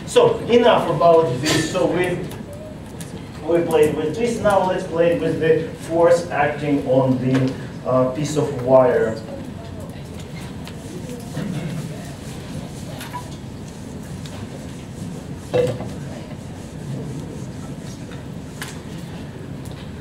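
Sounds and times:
eraser wiping whiteboard: 0:10.7 - 0:19.2.

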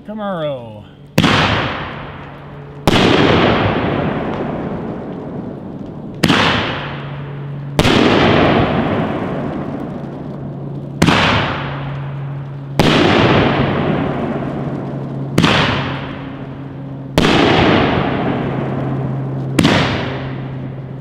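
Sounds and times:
firework shells exploding: 0:01.1 - 0:21.0.

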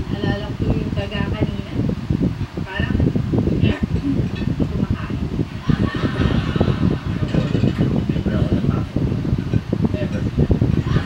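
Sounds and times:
muffled voices from tv: 0:00.0 - 0:11.0.

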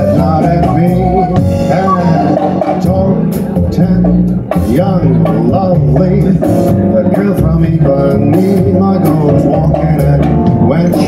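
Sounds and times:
jazz band playing: 0:00.0 - 0:11.0.

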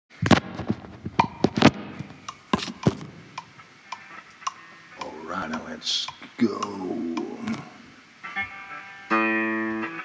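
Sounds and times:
sharp knocks and clicks: 0:00.3 - 0:03.5.

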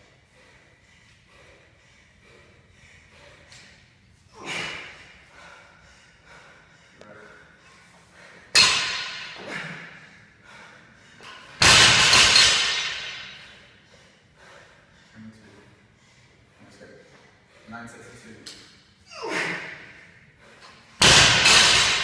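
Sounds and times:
barbell dropped on rubber floor: 0:11.6 - 0:13.2, 0:21.0 - 0:22.0.

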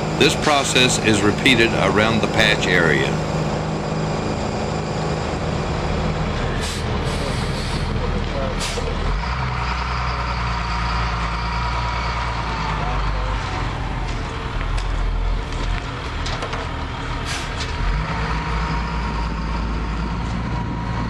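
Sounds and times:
truck engine running: 0:00.0 - 0:21.0
short sharp hisses: 0:06.6 - 0:07.9.

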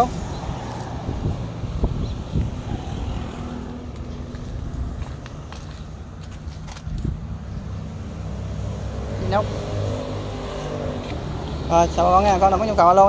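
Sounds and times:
engine running low rumble: 0:00.0 - 0:12.4.

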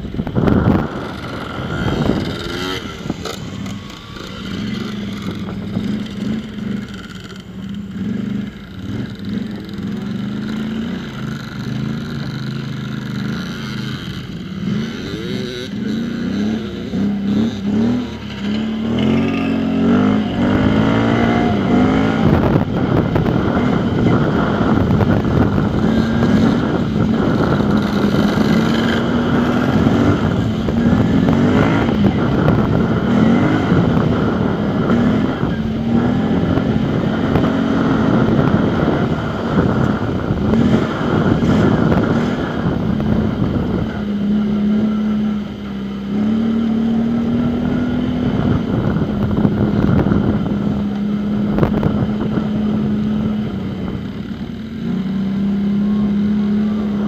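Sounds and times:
heavy rushing noise: 0:00.0 - 0:57.0
off-road vehicle engine: 0:00.0 - 0:57.0.

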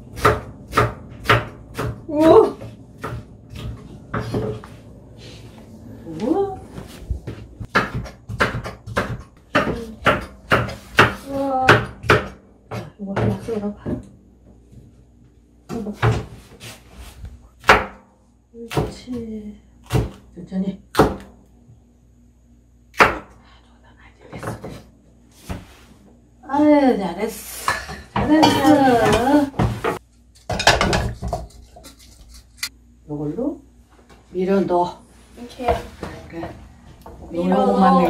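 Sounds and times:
knife chopping on cutting board: 0:00.1 - 0:04.5, 0:07.3 - 0:13.5, 0:19.8 - 0:20.2.

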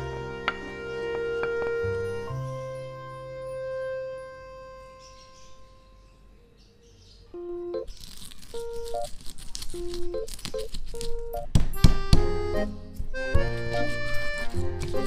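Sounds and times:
background music: 0:00.0 - 0:06.2, 0:09.8 - 0:15.0
pestle thumps: 0:00.4 - 0:02.0, 0:11.5 - 0:12.4
pestle crushing in stone mortar: 0:13.0 - 0:15.0.

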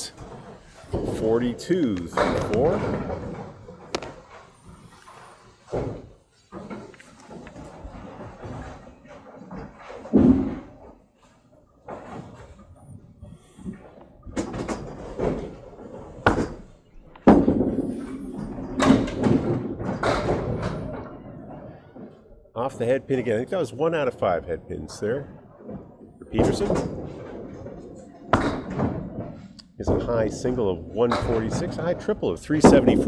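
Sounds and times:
bowling balls rolling: 0:00.0 - 0:33.0.

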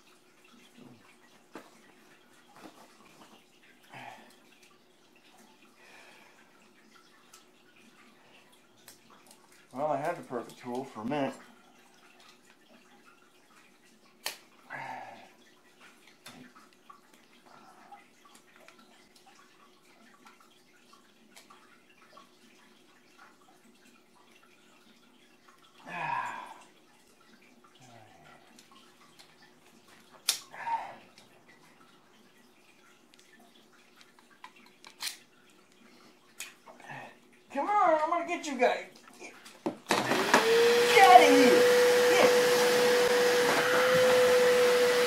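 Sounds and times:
faint steady hum: 0:00.0 - 0:39.9.

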